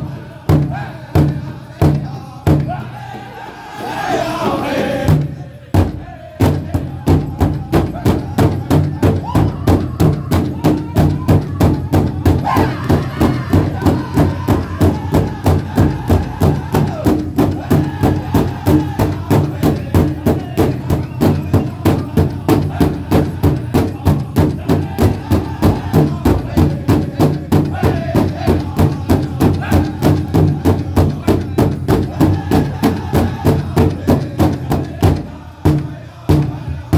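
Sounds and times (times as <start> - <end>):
large drum steady beat: 0.0 - 3.1, 4.4 - 36.9
drum group singing: 0.0 - 36.9.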